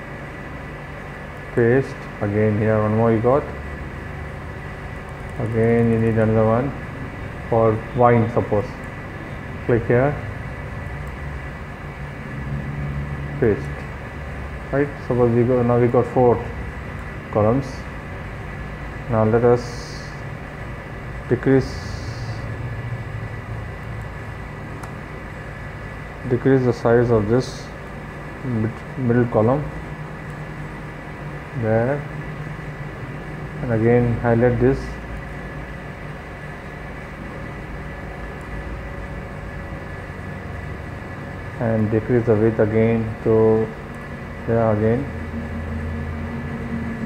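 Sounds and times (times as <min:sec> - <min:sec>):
low background hum: 0:00.0 - 0:47.0.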